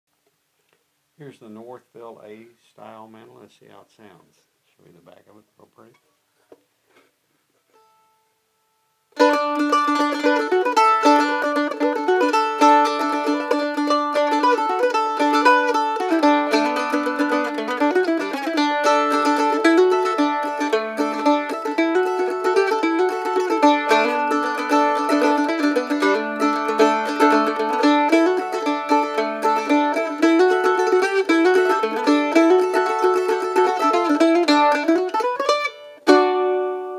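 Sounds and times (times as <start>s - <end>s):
faint taps: 6.4s - 7.1s
mandolin tune: 7.6s - 36.9s.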